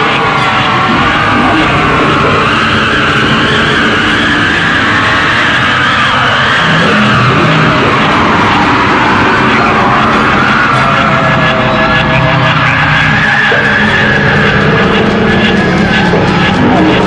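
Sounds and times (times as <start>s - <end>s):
distorted harsh noise: 0.0s - 17.0s
sliding whines: 0.0s - 17.0s.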